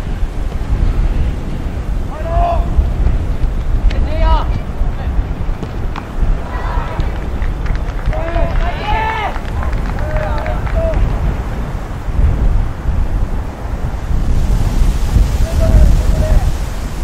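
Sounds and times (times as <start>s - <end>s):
wind buffeting microphone: 0.0s - 17.0s
players shouting: 6.1s - 7.2s, 8.1s - 11.2s.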